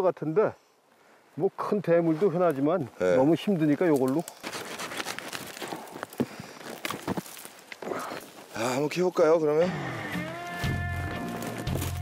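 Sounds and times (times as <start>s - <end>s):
saw rasping through branches: 4.0s - 5.8s.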